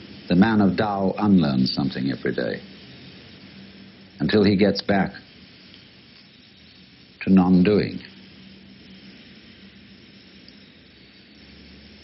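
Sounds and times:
faint low hum: 0.0s - 12.0s
recording hiss: 0.0s - 12.0s.

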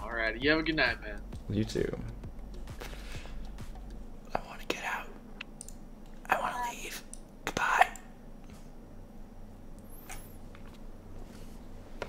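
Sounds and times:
low hum: 0.0s - 12.0s
breathy whispering voice: 4.3s - 5.2s, 6.2s - 8.1s
sharp clicks: 5.4s - 6.2s.

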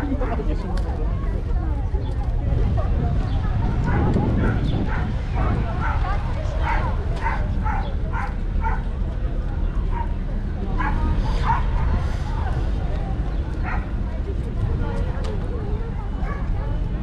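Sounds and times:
murmur of voices: 0.0s - 17.0s
low rumble: 0.9s - 17.0s
dog barking: 3.8s - 8.9s, 10.8s - 11.7s, 13.6s - 13.9s.

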